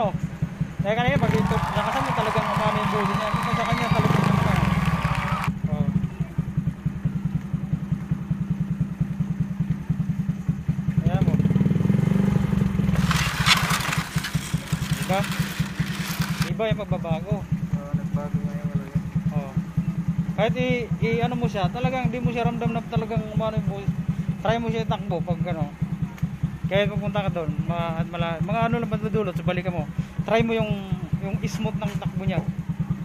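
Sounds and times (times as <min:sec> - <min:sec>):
motorcycle engine idling and revving: 0:00.0 - 0:33.0.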